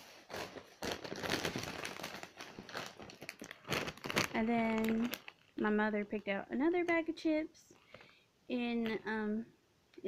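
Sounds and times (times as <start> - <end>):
chip bag crinkling: 0.1 - 6.9.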